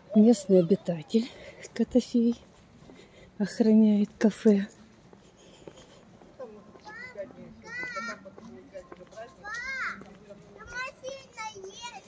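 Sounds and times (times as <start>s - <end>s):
children shouting and squealing: 6.4s - 8.5s, 9.3s - 12.0s.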